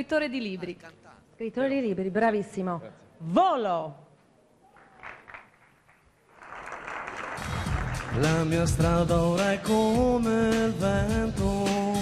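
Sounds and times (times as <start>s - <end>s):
audience applause: 4.7s - 8.8s.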